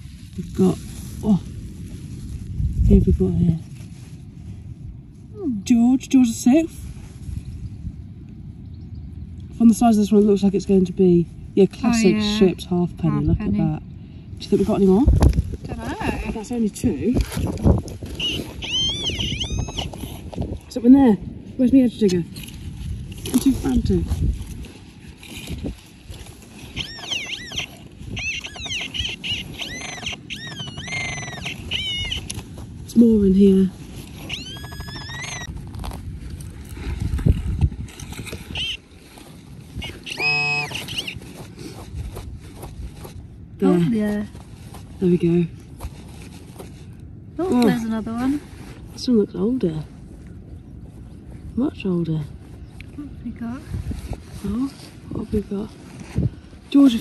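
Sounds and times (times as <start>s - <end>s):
digging scraping in soil: 22.0s - 49.2s.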